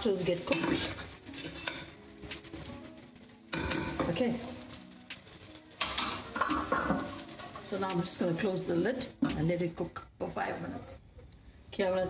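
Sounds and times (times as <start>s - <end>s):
metal pot and lid clinking: 0.1s - 2.0s, 3.5s - 9.4s.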